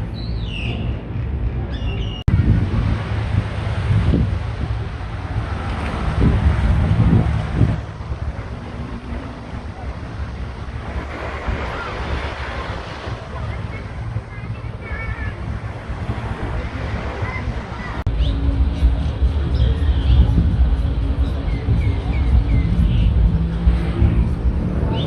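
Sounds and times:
wind buffeting microphone: 0.0s - 25.0s
bird chirps: 0.1s - 0.9s, 1.7s - 2.3s
small waves washing onto sand: 2.3s - 25.0s.

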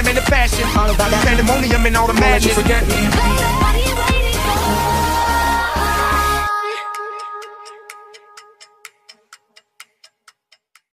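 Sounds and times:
held musical note: 0.6s - 9.0s
faint clock-like ticking: 6.8s - 10.9s.

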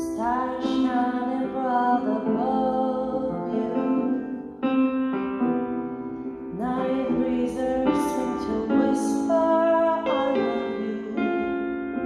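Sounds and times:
woman singing: 0.0s - 4.6s, 6.5s - 12.0s
piano accompaniment: 0.0s - 12.0s.

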